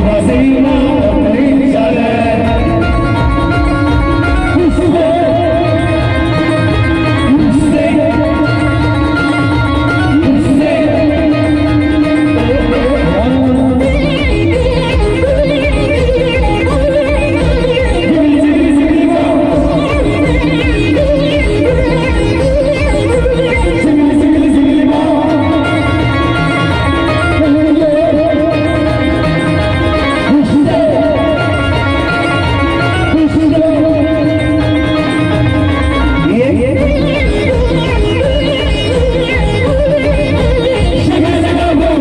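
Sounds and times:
men singing into microphones: 0:00.0 - 0:16.0, 0:17.3 - 0:29.5, 0:30.1 - 0:42.0
electronic keyboard melody with vibrato: 0:00.0 - 0:42.0.

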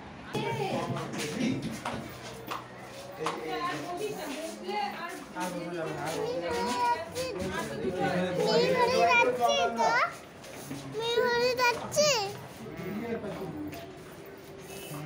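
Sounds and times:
children calling and playing: 0:00.1 - 0:15.0.

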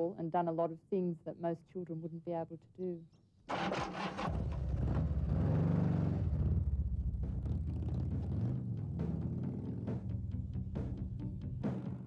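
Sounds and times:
motorcycle engine running: 0:04.2 - 0:11.2.

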